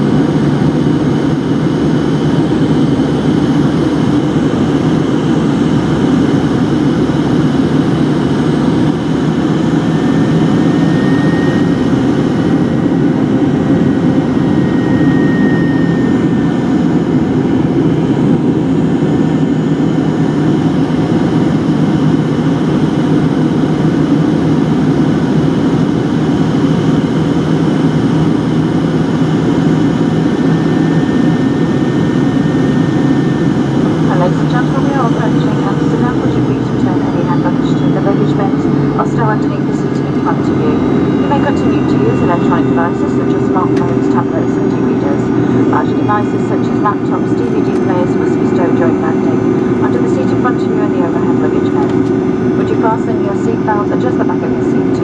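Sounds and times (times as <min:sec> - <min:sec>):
airplane cabin engine drone: 0:00.0 - 0:55.0
faint high whine: 0:09.9 - 0:17.2.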